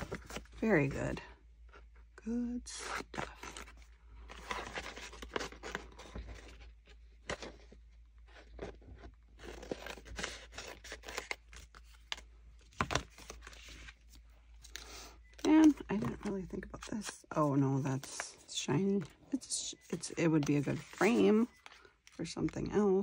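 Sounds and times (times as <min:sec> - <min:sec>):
paper rustling and scraping: 0:03.0 - 0:23.0.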